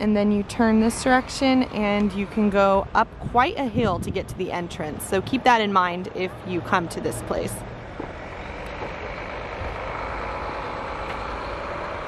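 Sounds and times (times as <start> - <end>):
passing vehicle engine and road noise: 0.0 - 12.0.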